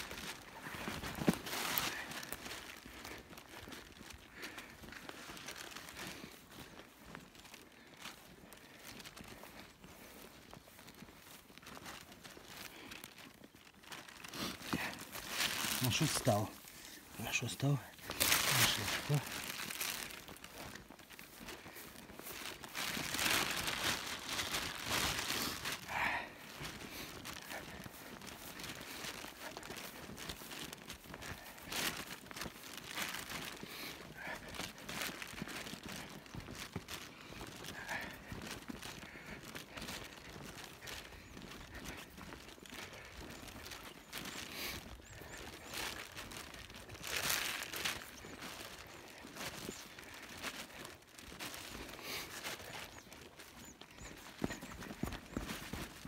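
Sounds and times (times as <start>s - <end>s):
footsteps through dry grass: 0.0s - 56.0s
grass and clothing rustling: 0.0s - 56.0s.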